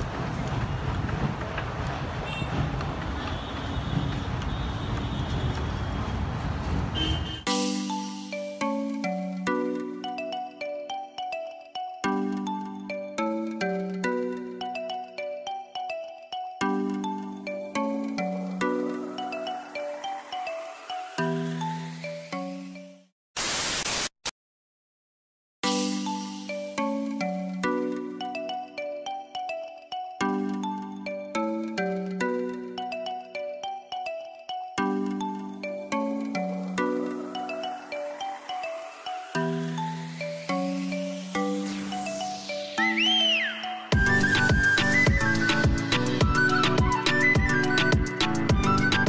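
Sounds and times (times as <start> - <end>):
rumble of passing vehicles: 0.0 - 7.5
faint car horn: 2.2 - 2.7, 3.3 - 6.2, 6.9 - 7.5
white-noise static burst: 23.4 - 24.3.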